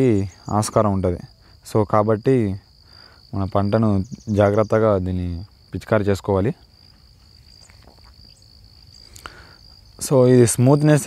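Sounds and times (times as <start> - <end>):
man talking: 0.0 - 2.7, 3.3 - 6.6, 10.0 - 11.0
high-pitched insect trill: 0.0 - 11.0.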